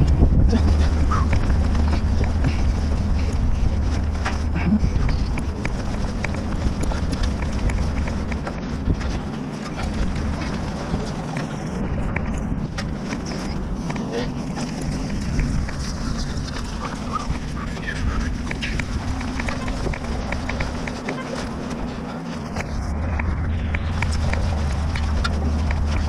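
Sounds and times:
climbing on steel ladder rungs: 0.0 - 26.0
wind rumble on microphone: 0.0 - 26.0.

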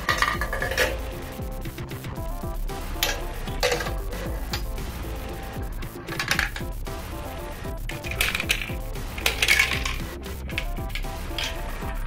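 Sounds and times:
marbles rolling through plastic track: 0.0 - 1.0, 6.1 - 6.7, 7.9 - 11.8
background music: 0.0 - 12.0.

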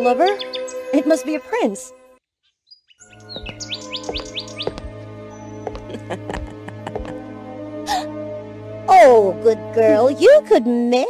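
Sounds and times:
bird chirping rising notes: 2.4 - 6.0
background music with plucked notes: 3.2 - 11.0.

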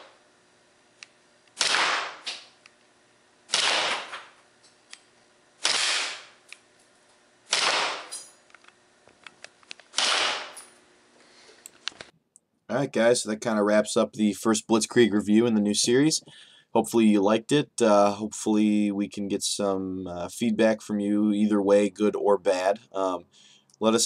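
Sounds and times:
airsoft pistol firing bursts: 1.6 - 2.5, 3.5 - 4.4, 5.6 - 6.4, 7.5 - 8.1, 9.9 - 10.6.

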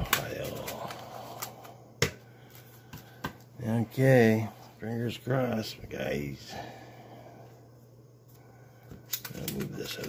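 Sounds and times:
man's voice: 3.6 - 6.7
banknotes snapping and tapping: 8.9 - 10.0
banknotes rustling: 9.0 - 10.0.

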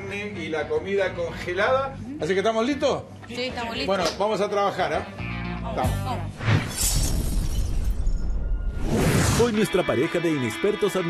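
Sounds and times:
glass shattering crash: 6.5 - 8.6.

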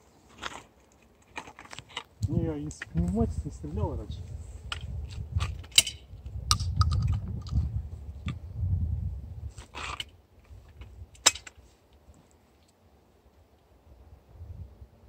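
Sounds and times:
shotgun clicks and rattles: 5.4 - 7.7.

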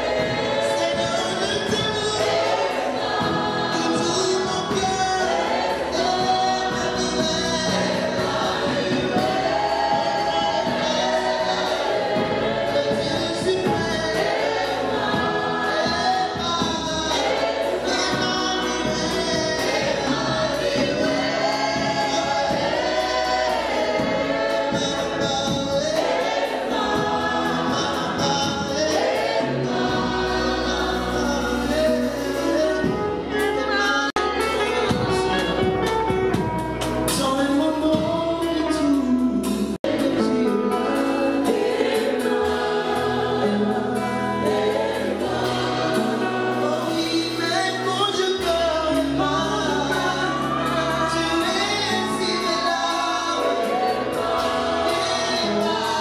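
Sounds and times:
choir singing gospel song: 0.0 - 56.0.

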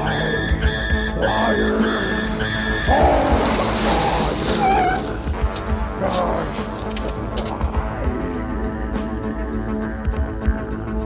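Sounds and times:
loud hissing squealing noise: 0.0 - 7.0
music with pulsing high tone: 0.0 - 11.0.

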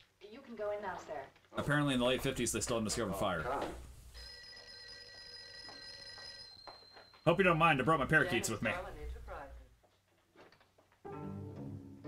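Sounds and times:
telephone bell ringing: 4.2 - 7.3.

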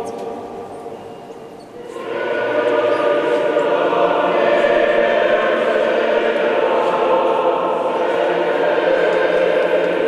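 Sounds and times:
choir singing with reverberation: 1.8 - 10.0.

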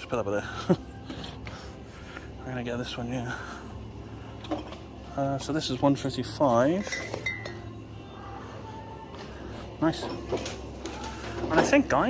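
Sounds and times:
glass bottles clinking: 6.8 - 7.7.

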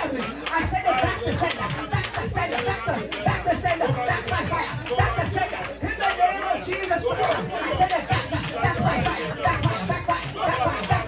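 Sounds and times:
man praying into a microphone: 0.0 - 11.0
other voices praying aloud: 0.0 - 11.0.

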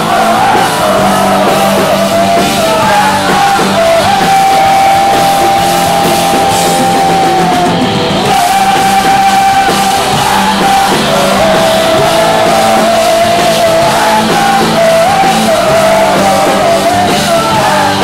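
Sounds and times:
person singing long notes: 0.0 - 18.0
punk rock band playing live: 0.0 - 18.0.

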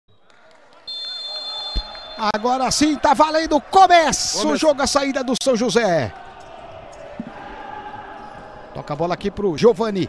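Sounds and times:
referee's whistle two-tone blast: 0.9 - 2.4.

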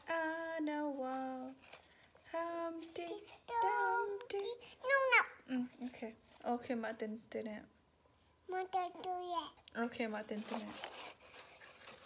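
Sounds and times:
toddler singing held notes: 2.3 - 5.4.

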